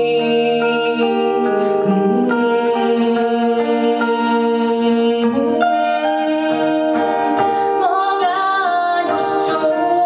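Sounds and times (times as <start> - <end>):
acoustic guitar playing: 0.0 - 10.0
woman singing: 0.0 - 10.0.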